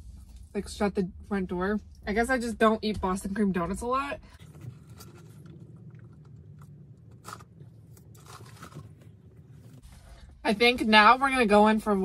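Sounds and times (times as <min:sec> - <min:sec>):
soft chewing: 0:04.3 - 0:10.3.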